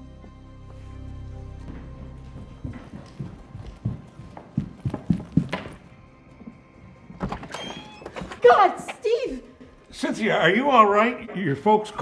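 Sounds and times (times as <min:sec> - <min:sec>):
hurried footsteps on hard floor: 0:00.2 - 0:07.4.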